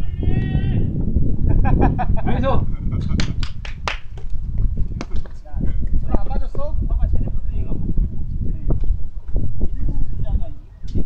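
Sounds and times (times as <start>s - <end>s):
person shouting: 0.0s - 0.9s
wind rumble on microphone: 0.0s - 11.0s.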